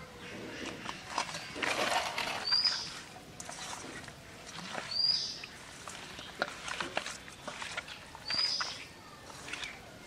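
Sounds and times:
hand squishing fish in bowl: 0.6 - 10.0.

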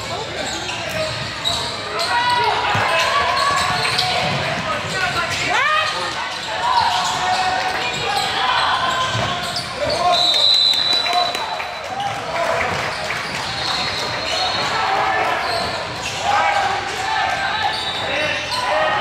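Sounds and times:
sneakers squeaking on hardwood: 0.1 - 10.5, 12.8 - 16.3
referee's whistle: 8.6 - 11.8, 13.6 - 14.8.

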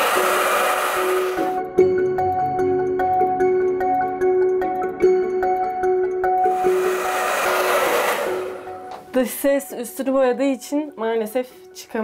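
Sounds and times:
hair dryer blowing: 0.0 - 1.6, 6.4 - 9.0.

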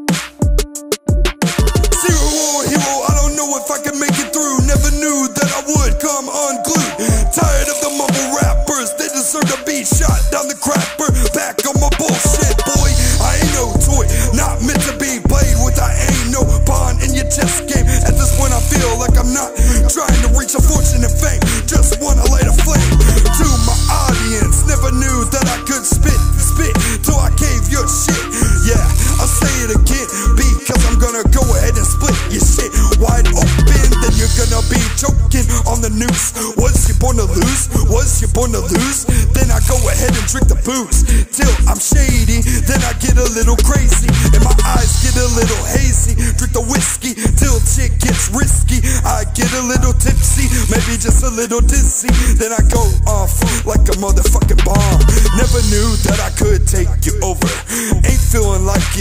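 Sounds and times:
hip hop beat: 0.0 - 59.0
vocal line: 0.0 - 59.0
deep bass notes: 12.8 - 59.0.

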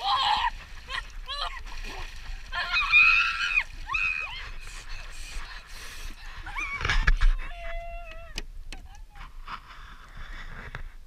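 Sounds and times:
boy yelping and shrieking: 0.0 - 1.6, 2.5 - 4.6
water splashing: 0.0 - 8.4.

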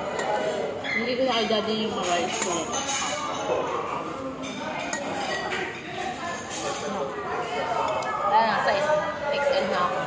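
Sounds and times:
cutlery clinking on plates: 0.0 - 7.0
murmur of voices: 0.0 - 10.0.

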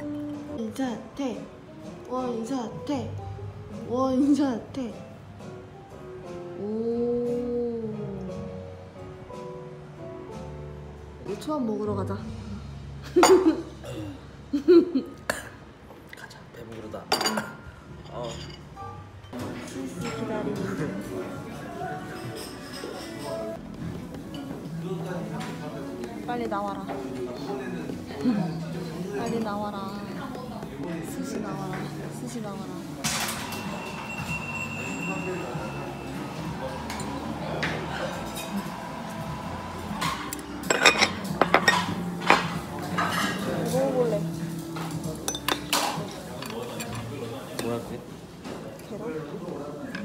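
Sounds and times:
glass clinking on wooden table: 17.1 - 18.7, 40.6 - 43.3.

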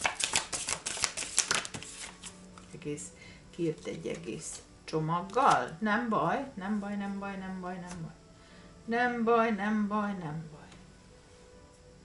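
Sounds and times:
cards being shuffled: 0.0 - 2.8.

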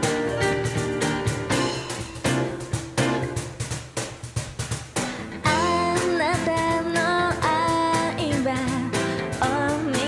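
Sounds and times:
pop music with guitar and drums: 0.0 - 10.0
woman singing: 5.4 - 10.0.

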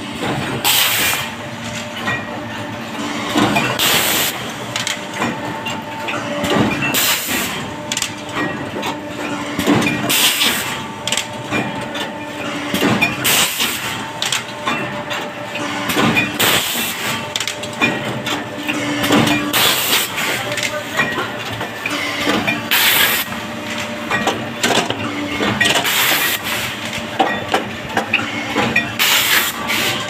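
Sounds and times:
mechanical hum: 0.0 - 30.0
pressing machine hiss and knock: 28.6 - 30.0.

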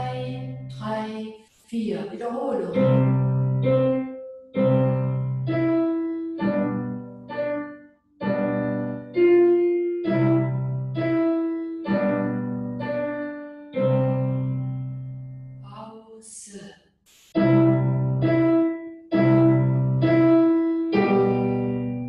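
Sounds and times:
slow piano melody with chords: 2.8 - 15.6, 17.4 - 22.0.

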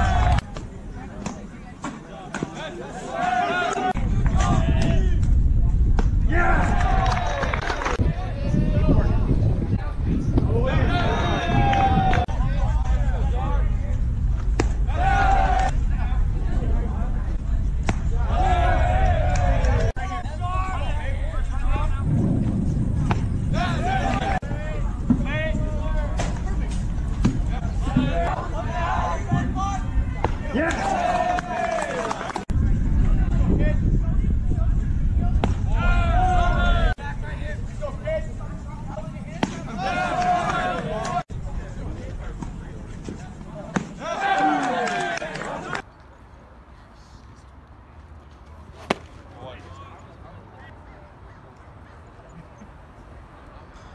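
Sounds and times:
voices calling out: 0.0 - 5.0
wind rumbling on microphone: 3.9 - 31.4, 32.4 - 43.6
baseball bat crack: 14.4 - 15.8, 17.8 - 18.2, 48.6 - 49.7
baseball hitting mitt: 48.8 - 49.4.

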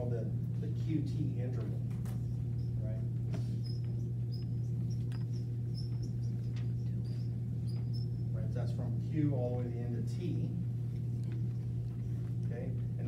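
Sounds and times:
steady low hum: 0.0 - 13.0
marker squeaking on whiteboard: 2.2 - 8.4.

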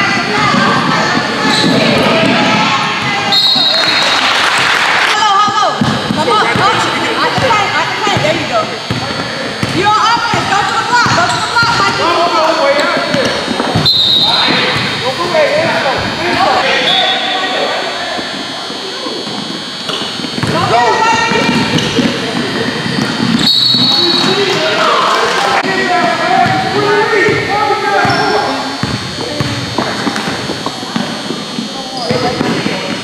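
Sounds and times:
basketball bouncing on hardwood floor: 5.4 - 12.0, 19.9 - 22.2, 28.8 - 31.2.

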